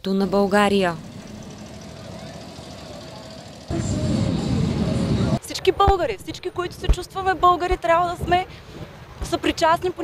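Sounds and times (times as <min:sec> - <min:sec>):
motorcycle engines idling: 0:00.1 - 0:05.4
motorcycle engine revving high: 0:00.6 - 0:05.4.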